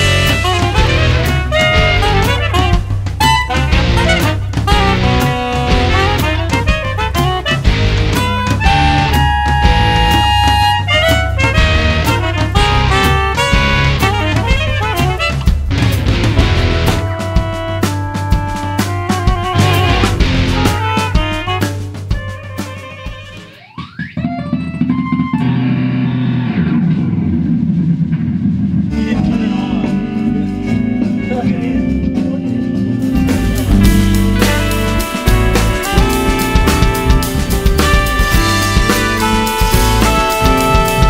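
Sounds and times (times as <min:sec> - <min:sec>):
jazz-rock fusion band music: 0:00.0 - 0:26.8, 0:28.7 - 0:41.0
bass: 0:00.0 - 0:41.0
drums: 0:00.0 - 0:41.0.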